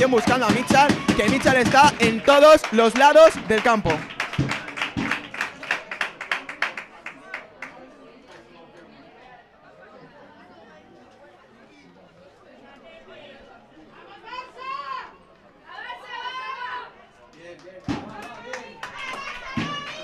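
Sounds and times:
loud shouted calls: 0.0 - 5.1, 18.6 - 20.0
murmur of chatter: 0.0 - 20.0.

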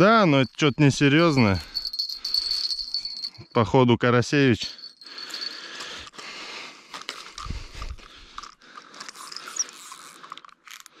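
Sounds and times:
fishing reel whirring: 9.1 - 10.2.

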